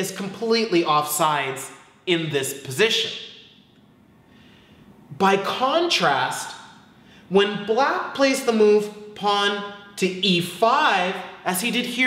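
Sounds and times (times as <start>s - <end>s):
faint intake of breath: 4.2s - 5.1s, 6.9s - 7.3s.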